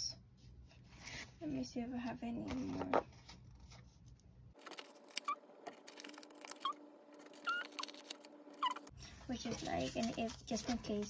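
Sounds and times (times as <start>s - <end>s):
paper sheet rustling: 2.4s - 11.0s
stickers squeaking off backing: 4.6s - 8.9s.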